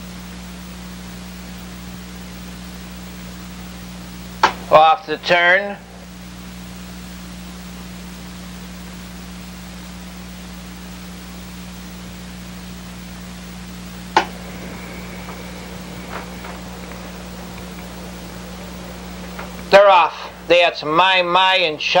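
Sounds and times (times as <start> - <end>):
steady hiss: 0.0 - 22.0
low hum: 3.5 - 8.3, 13.6 - 21.9.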